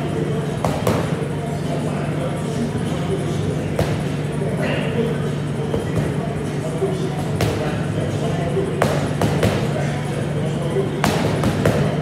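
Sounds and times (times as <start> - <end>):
steady low hum: 0.0 - 12.0
boxing gloves punching mitts: 11.0 - 12.0.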